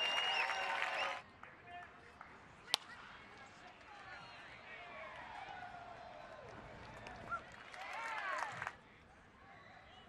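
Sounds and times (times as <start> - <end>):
faint crowd noise: 0.0 - 10.0.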